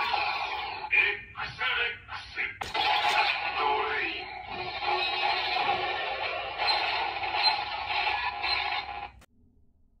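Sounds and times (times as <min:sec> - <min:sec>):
electronic toy sound effect with music: 0:01.5 - 0:09.2.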